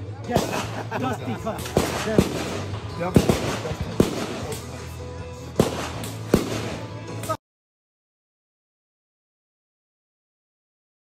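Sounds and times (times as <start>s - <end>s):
background music: 0.0s - 7.4s
gunshots: 0.2s - 4.9s, 5.5s - 7.4s.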